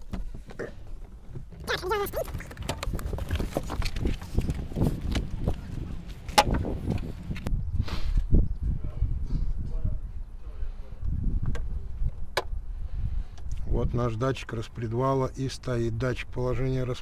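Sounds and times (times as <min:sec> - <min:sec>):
handling noise: 0:00.0 - 0:07.5
footsteps: 0:01.1 - 0:07.5.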